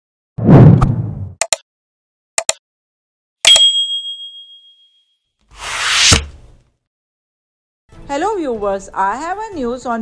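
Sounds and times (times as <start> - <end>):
bright notification bell ding: 3.5 - 4.9
whoosh: 5.6 - 6.3.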